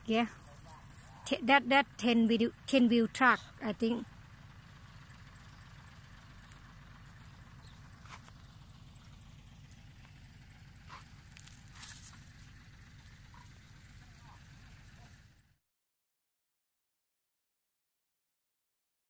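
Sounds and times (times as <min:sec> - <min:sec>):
diesel engine low rumble: 0:00.0 - 0:15.6.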